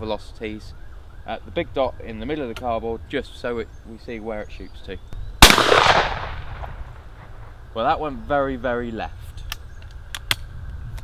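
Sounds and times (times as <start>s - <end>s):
shotgun shot with echo: 5.4s - 7.3s.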